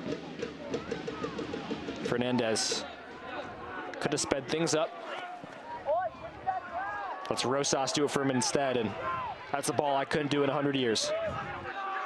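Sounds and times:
faint stadium crowd noise: 0.0 - 12.0
people shouting calls: 0.4 - 12.0.

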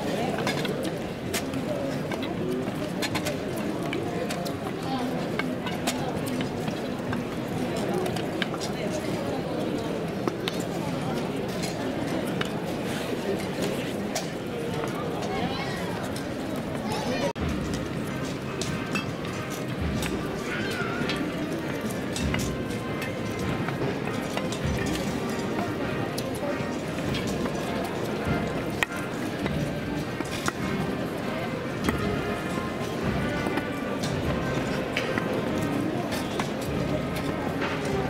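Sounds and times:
murmur of crowd voices: 0.0 - 38.0.

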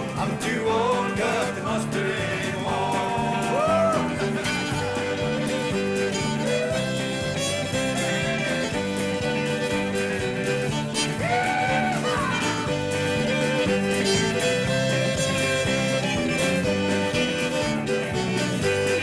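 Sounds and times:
guitar backing: 0.0 - 19.0
fiddle playing country tune: 1.8 - 19.0.

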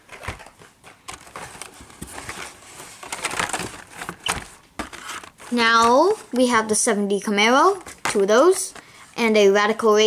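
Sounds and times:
toy packages rustling and scraping: 0.0 - 9.5.

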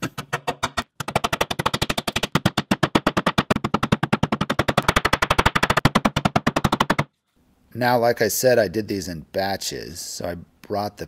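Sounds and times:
rubber mallet tapping wood: 0.0 - 7.1.

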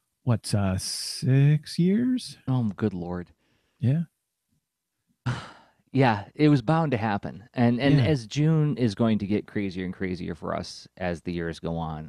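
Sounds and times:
man sighing: 5.3 - 5.8.

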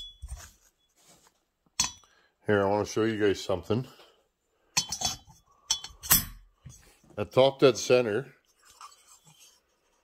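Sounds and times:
metal parts clinking: 4.8 - 6.5.

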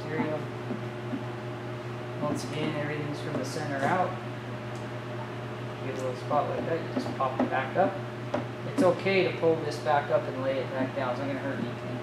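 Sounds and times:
machinery hum: 0.0 - 12.0.

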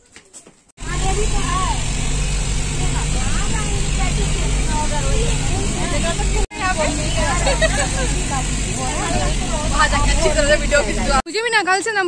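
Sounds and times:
engine and road rumble: 0.6 - 11.3
passengers talking: 0.8 - 12.0.

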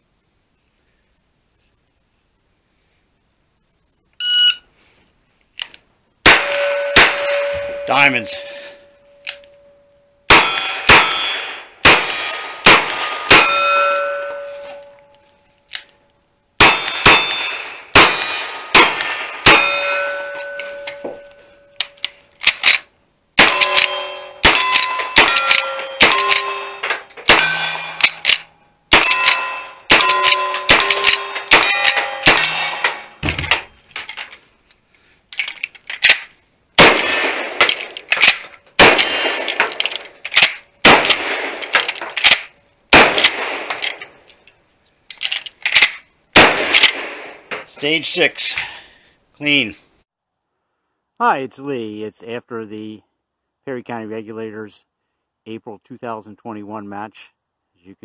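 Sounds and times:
gunshots: 6.2 - 8.8, 10.3 - 13.8, 16.6 - 19.9, 23.4 - 33.6, 36.8 - 44.1, 45.7 - 47.6
steel plate clanging: 6.3 - 15.5, 16.6 - 22.3, 23.4 - 34.4.

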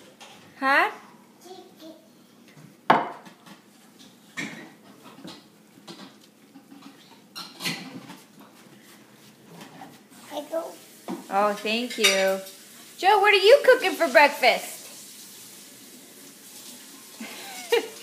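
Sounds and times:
plate knocking on a tabletop: 2.9 - 3.3.

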